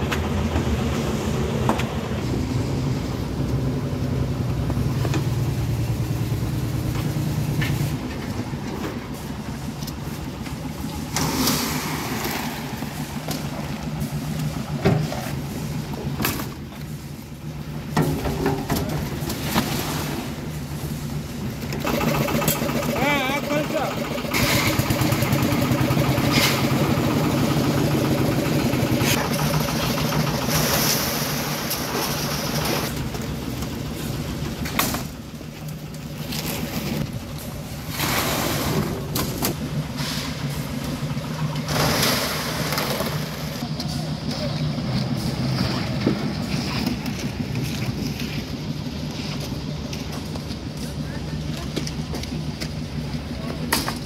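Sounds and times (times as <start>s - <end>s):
machinery engine hum: 0.0s - 54.0s
wet concrete sliding out: 11.0s - 13.6s, 30.4s - 33.2s, 37.8s - 40.7s.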